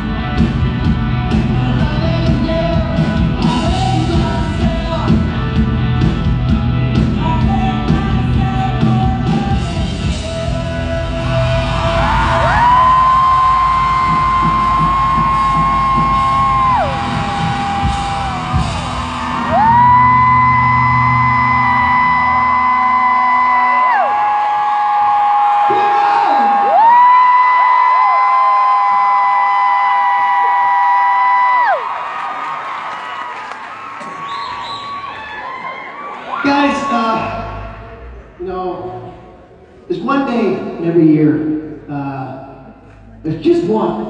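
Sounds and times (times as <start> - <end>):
live rock drums and bass: 0.0 - 22.7
singer holding long notes: 7.2 - 25.6.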